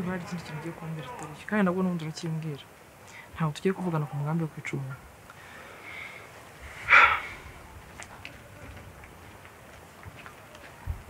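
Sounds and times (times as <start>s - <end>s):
woman speaking: 0.0s - 2.7s, 3.3s - 5.0s.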